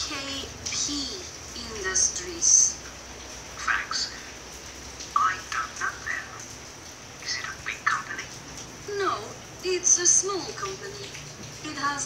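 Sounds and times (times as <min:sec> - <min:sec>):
person speaking over telephone: 0:00.0 - 0:02.8, 0:03.6 - 0:04.3, 0:05.1 - 0:06.5, 0:07.2 - 0:12.0.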